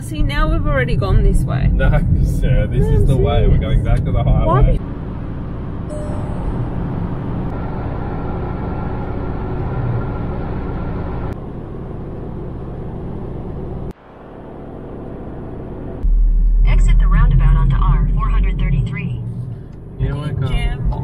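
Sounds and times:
low rumble: 0.0s - 21.0s
car engine and tyre drone: 1.0s - 21.0s.

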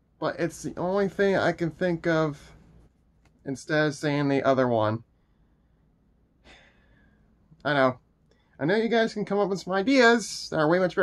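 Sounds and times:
faint breath drawn in: 5.1s - 7.4s.

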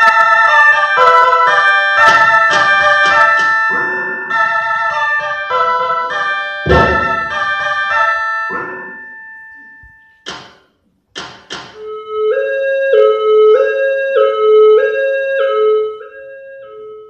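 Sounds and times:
two-tone siren: 0.0s - 10.2s, 11.8s - 17.0s
held keyboard note: 3.7s - 10.1s
sharp thuds: 6.7s - 7.8s.

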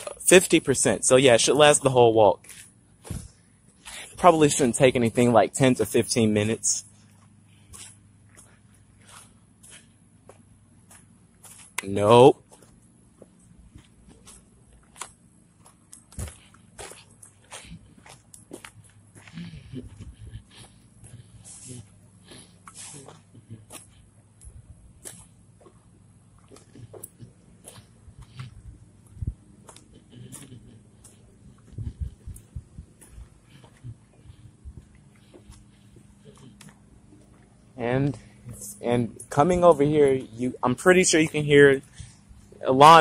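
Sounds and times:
faint low hum: 0.0s - 43.0s
footsteps on pavement: 6.9s - 43.0s.

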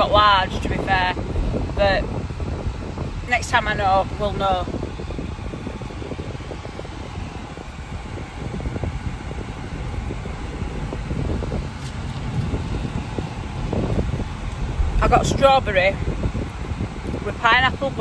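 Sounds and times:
car cabin rumble and hiss: 0.0s - 18.0s
ventilation fan running: 0.0s - 18.0s.

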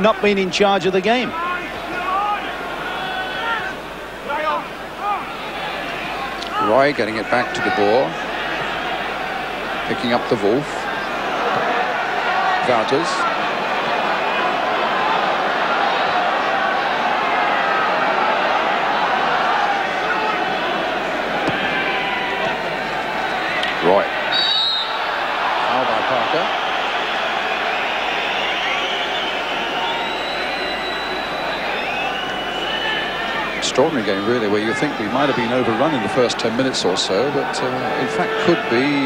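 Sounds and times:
stadium crowd chanting: 1.3s - 39.0s
referee's whistle blast: 24.2s - 25.0s, 28.0s - 33.6s, 37.7s - 39.0s.

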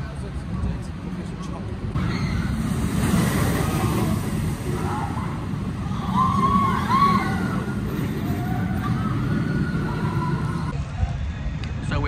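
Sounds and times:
roller coaster rumbling roar: 1.8s - 11.8s.

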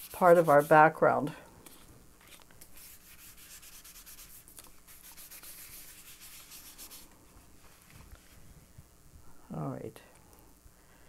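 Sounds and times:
tissue rubbing pastel on paper: 0.0s - 1.0s, 1.7s - 8.4s.

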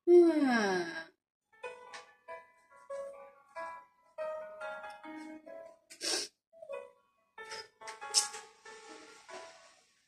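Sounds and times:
soft background music: 1.6s - 10.0s.

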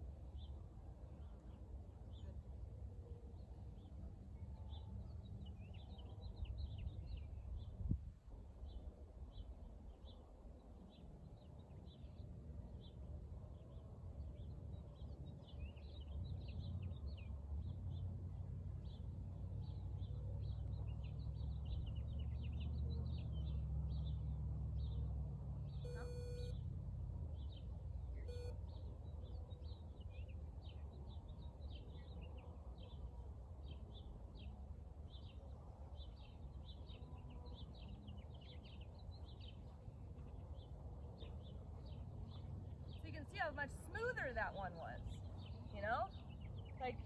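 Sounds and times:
small birds chirping: 25.7s - 26.6s, 27.3s - 47.0s
short beeps: 25.8s - 26.6s, 28.3s - 28.6s.

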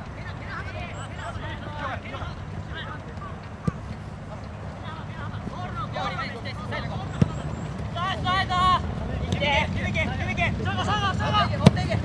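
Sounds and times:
low outdoor rumble: 0.0s - 12.0s
soccer players shouting: 0.0s - 12.0s
ball kick: 3.1s - 4.0s, 7.1s - 7.4s.

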